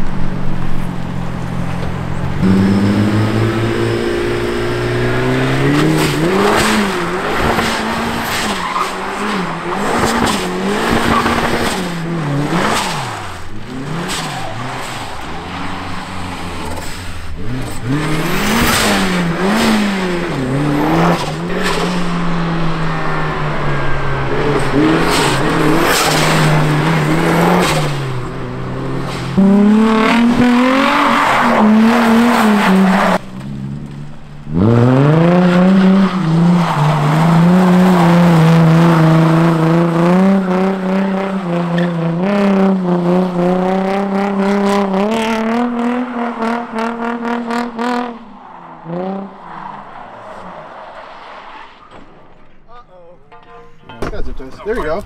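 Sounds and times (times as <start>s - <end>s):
car engine revving: 0.0s - 52.3s
tires squealing: 1.4s - 52.6s.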